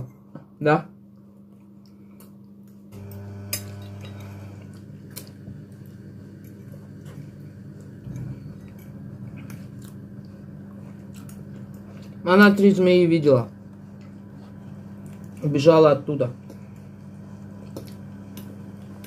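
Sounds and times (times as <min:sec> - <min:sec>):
steady low hum: 0:00.0 - 0:19.0
forks clinking on plates: 0:03.6 - 0:04.4
chewing: 0:04.2 - 0:12.7, 0:13.5 - 0:15.6, 0:16.3 - 0:19.0.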